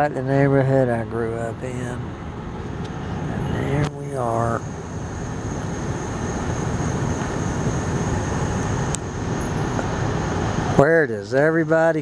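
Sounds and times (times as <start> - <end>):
car engine and tyre hum: 0.0 - 12.0.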